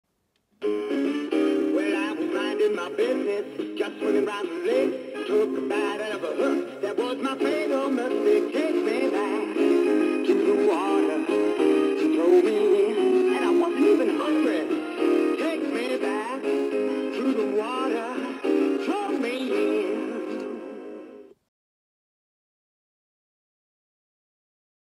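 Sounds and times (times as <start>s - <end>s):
jingly backing track: 0.6s - 20.7s
man singing through small speaker: 1.6s - 21.0s.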